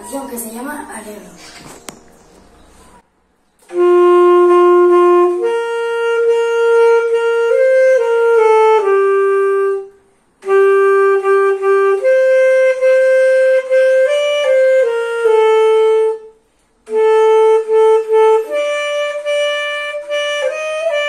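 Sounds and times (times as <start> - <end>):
alto saxophone melody: 3.6 - 21.0.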